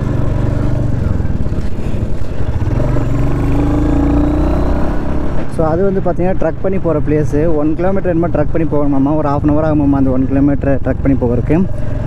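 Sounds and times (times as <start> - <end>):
motorcycle engine running: 0.0 - 6.0, 7.7 - 12.0.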